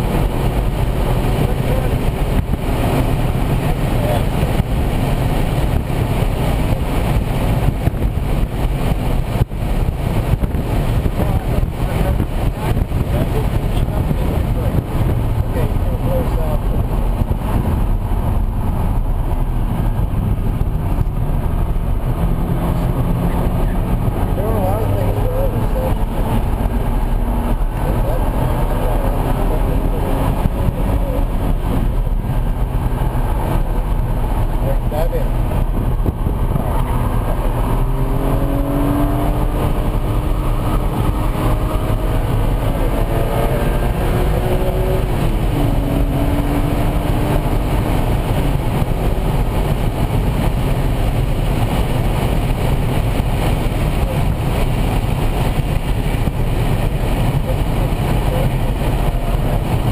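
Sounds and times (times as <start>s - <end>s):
car engine revving under acceleration: 0.0s - 59.9s
road and wind noise: 0.0s - 59.9s.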